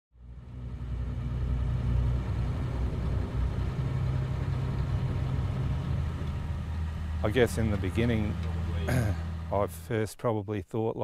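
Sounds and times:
vehicle engine rumble from inside: 0.2 - 10.0.

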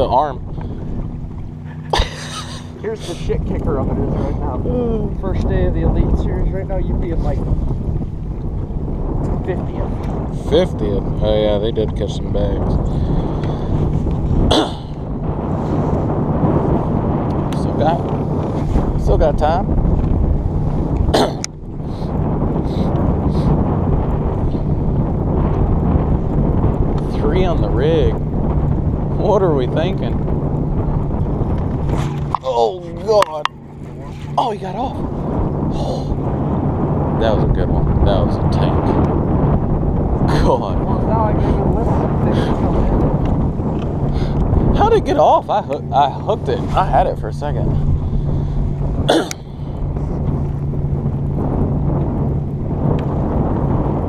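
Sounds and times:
low constant hum: 0.0 - 54.0
wind buffeting microphone: 0.0 - 54.0.

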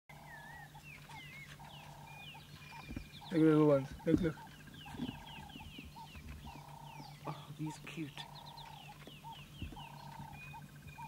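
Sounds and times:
low pulsed animal call: 0.1 - 11.0
steady low hum: 0.1 - 11.0.

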